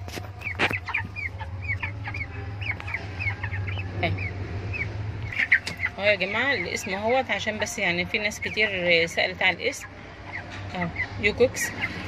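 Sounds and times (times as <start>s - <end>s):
chicks peeping: 0.0s - 12.0s
steady low hum: 0.0s - 12.0s.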